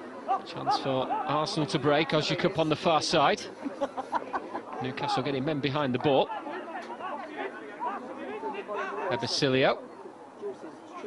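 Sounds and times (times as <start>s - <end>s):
spectators chattering: 0.0s - 11.0s
players shouting: 0.1s - 2.3s, 4.9s - 9.3s.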